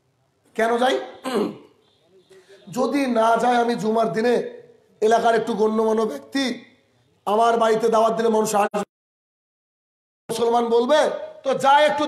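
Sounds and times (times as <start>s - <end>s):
man lecturing: 0.5s - 8.9s, 10.3s - 12.0s.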